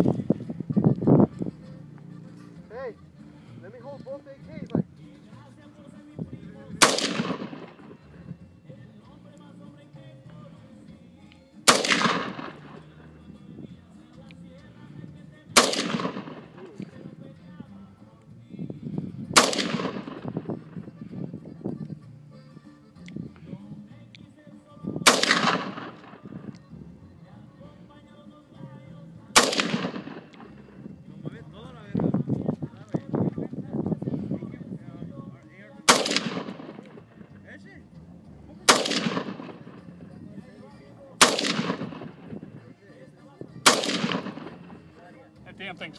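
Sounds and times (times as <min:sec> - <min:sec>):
rifle shots with ringing echo: 0:06.7 - 0:08.2, 0:11.6 - 0:13.2, 0:15.3 - 0:17.0, 0:19.4 - 0:21.0, 0:25.0 - 0:26.6, 0:29.2 - 0:31.2, 0:35.8 - 0:37.4, 0:38.6 - 0:40.6, 0:41.2 - 0:42.6, 0:43.6 - 0:45.0.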